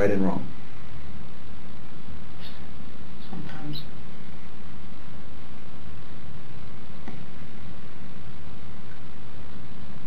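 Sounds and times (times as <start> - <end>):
steady hum and hiss: 0.0 - 10.0
faint squeaky sounds: 2.4 - 4.0.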